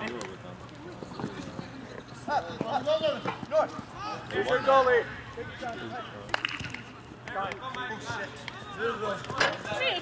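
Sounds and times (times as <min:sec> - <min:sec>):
players shouting calls: 0:02.2 - 0:10.0.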